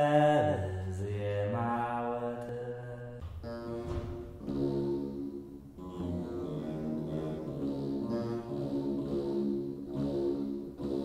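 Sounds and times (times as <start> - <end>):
low chanting voice: 0.0 - 11.0.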